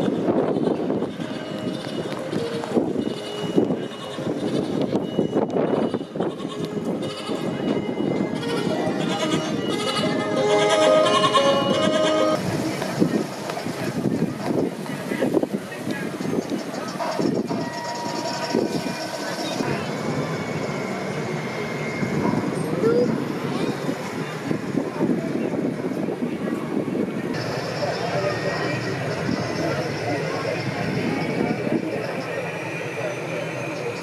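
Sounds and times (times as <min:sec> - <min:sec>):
people chattering: 0:00.0 - 0:34.0
short tune with clear tones: 0:07.6 - 0:12.4.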